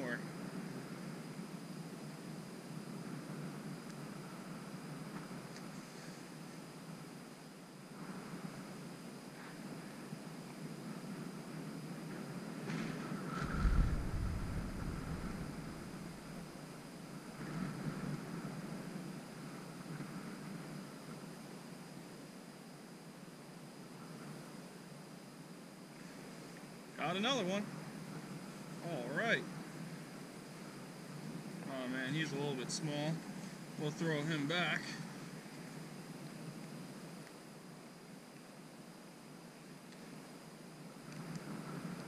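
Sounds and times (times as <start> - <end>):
wind buffeting microphone: 13.1 - 16.6.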